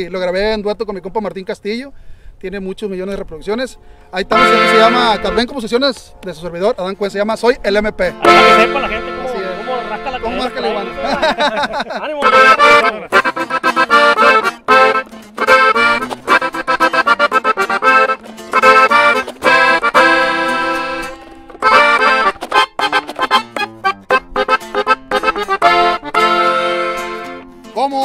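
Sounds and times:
acoustic guitar accompanying: 0:04.3 - 0:05.5, 0:08.1 - 0:28.0
button accordion playing: 0:04.3 - 0:05.8, 0:08.1 - 0:27.6.

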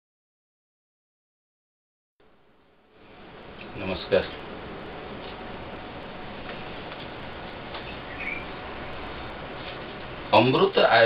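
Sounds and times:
steady hiss: 0:02.2 - 0:11.0.

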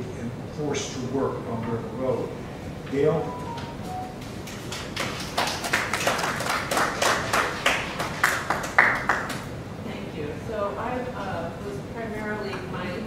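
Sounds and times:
small audience applauding: 0:04.2 - 0:09.5.

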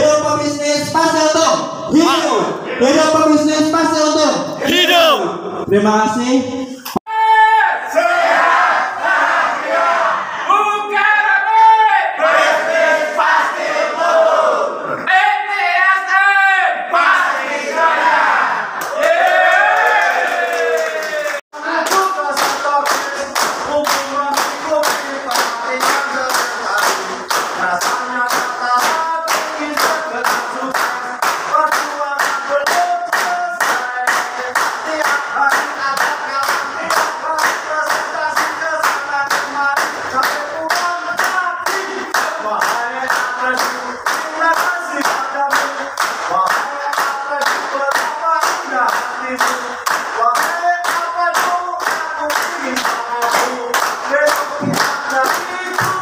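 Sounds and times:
group singing: 0:07.9 - 0:10.5, 0:12.0 - 0:15.1, 0:16.9 - 0:19.6, 0:21.2 - 0:56.0
hands clapping in time: 0:21.8 - 0:56.0.

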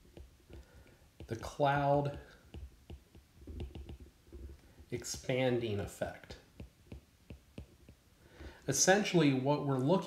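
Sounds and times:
stylus tapping on a tablet: 0:00.0 - 0:04.6, 0:05.2 - 0:08.0.

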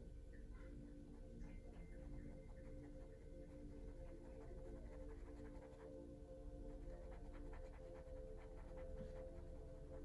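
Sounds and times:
brush dabbing paint on wood: 0:02.5 - 0:05.9, 0:06.7 - 0:10.0.

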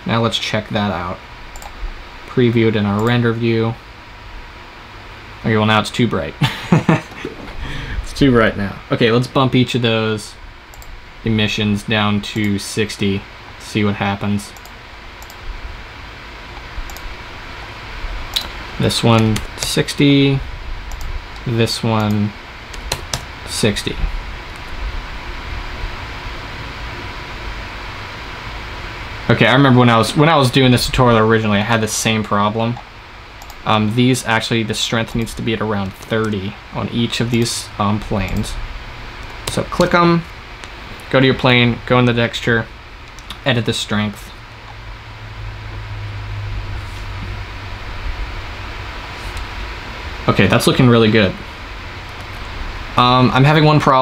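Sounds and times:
background hiss: 0:00.0 - 0:54.0
computer fans whirring: 0:00.0 - 0:54.0
low hum: 0:00.0 - 0:54.0.

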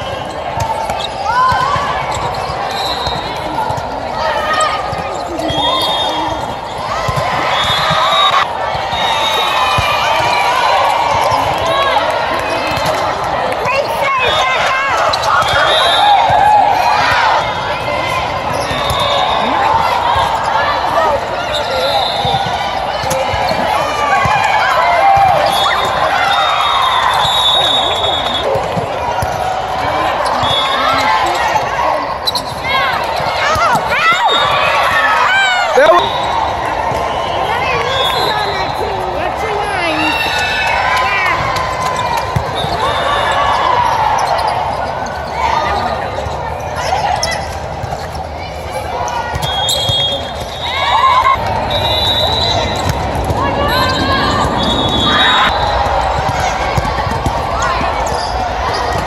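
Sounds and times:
crowd calling out and chattering: 0:00.0 - 0:59.0
volleyballs struck and bouncing: 0:00.3 - 0:26.2, 0:32.4 - 0:35.0, 0:41.0 - 0:42.9, 0:52.6 - 0:53.6, 0:55.7 - 0:59.0.

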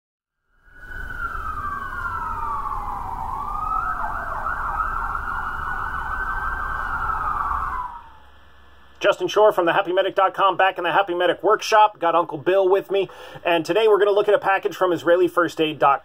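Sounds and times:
emergency siren wail and yelp: 0:00.6 - 0:08.8.

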